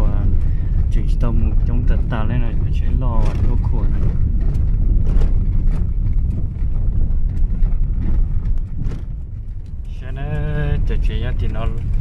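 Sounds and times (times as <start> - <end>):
car rumble on dirt road: 0.0 - 12.0.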